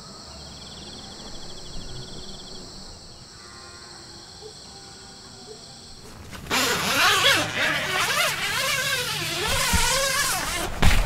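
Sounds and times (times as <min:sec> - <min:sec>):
wind howling in gusts: 0:00.3 - 0:03.3.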